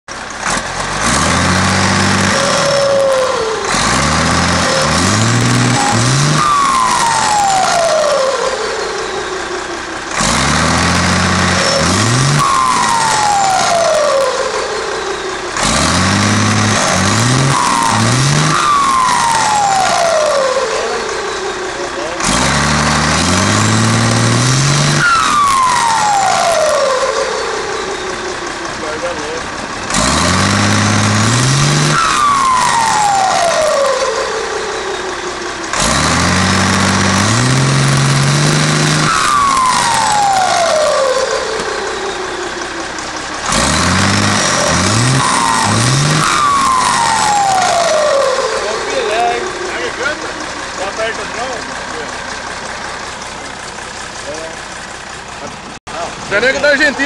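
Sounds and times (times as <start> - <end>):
diesel truck engine revving: 0.0 - 57.0
turbocharger whistle falling: 2.1 - 9.6, 10.5 - 21.6, 23.2 - 29.2, 31.0 - 50.3.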